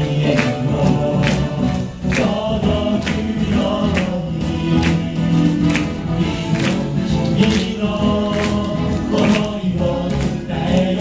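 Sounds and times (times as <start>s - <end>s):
pop song over loudspeakers: 0.0s - 11.0s.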